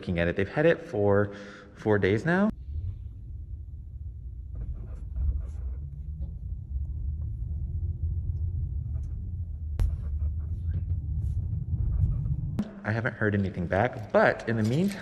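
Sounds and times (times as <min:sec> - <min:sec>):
car road noise rumble: 0:02.6 - 0:12.6.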